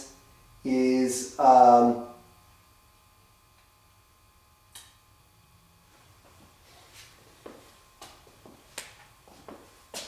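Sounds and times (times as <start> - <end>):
footsteps on hard floor: 6.2 - 10.0.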